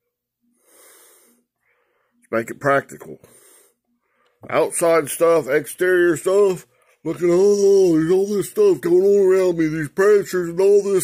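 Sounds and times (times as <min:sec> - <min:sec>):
man's faint breath: 0:00.5 - 0:02.2.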